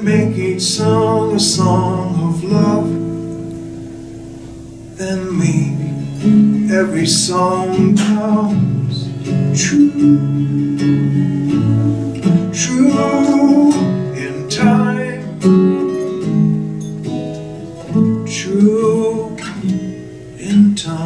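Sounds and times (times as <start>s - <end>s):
acoustic guitar playing: 0.0s - 21.0s.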